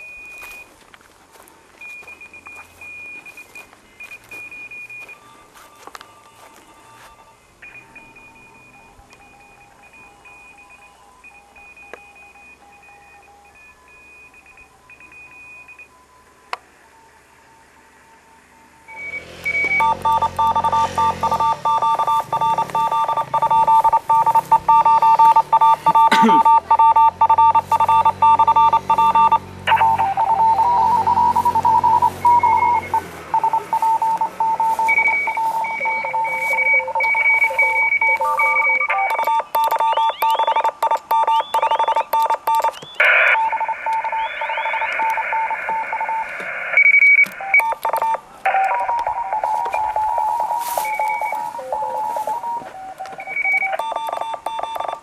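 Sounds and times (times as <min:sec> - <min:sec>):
morse code tones: 0:00.0 - 0:16.3, 0:18.4 - 0:55.0.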